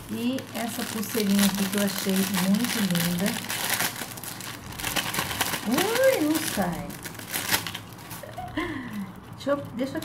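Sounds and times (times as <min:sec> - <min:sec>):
plastic bag crinkling: 0:00.0 - 0:10.0
woman laughing: 0:08.2 - 0:09.0.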